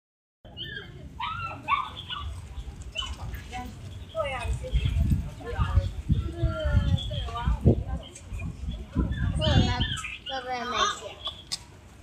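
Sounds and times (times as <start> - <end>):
puppy whimpering yips: 0.6 - 3.3.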